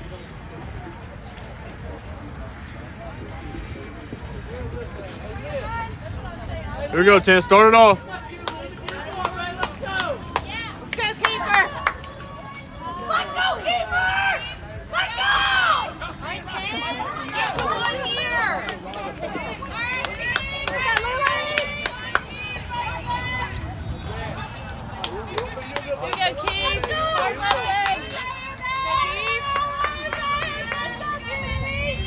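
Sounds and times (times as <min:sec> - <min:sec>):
players calling out and cheering: 0:00.0 - 0:32.0
sharp claps: 0:08.4 - 0:12.1.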